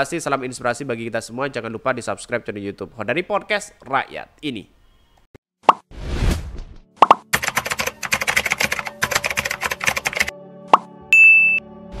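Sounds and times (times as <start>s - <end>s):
pop: 7.0s - 7.3s, 10.7s - 10.9s
rapid clicks: 7.4s - 10.3s
short high ding: 11.1s - 11.6s.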